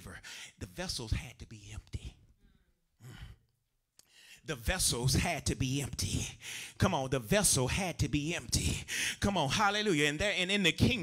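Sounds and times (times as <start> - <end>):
man speaking: 4.5 - 11.0
man breathing into microphone: 6.4 - 6.8, 8.8 - 9.2.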